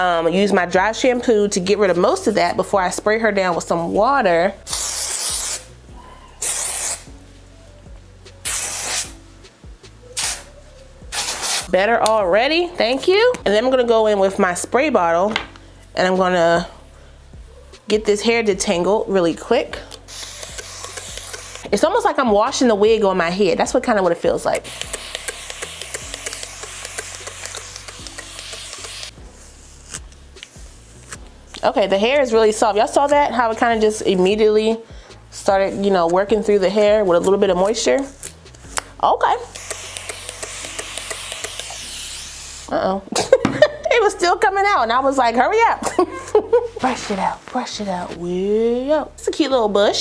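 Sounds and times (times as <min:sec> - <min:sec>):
aerosol can spraying hisses: 0:04.7 - 0:05.7, 0:06.4 - 0:07.1, 0:08.4 - 0:09.2, 0:10.2 - 0:10.5, 0:11.1 - 0:11.7, 0:20.1 - 0:21.8, 0:24.6 - 0:31.1, 0:39.4 - 0:42.7
background music with bass and beat: 0:05.7 - 0:11.8, 0:19.7 - 0:31.5.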